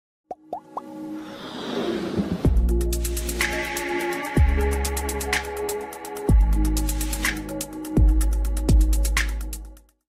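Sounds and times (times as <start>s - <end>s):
whoosh: 1.2s - 3.5s.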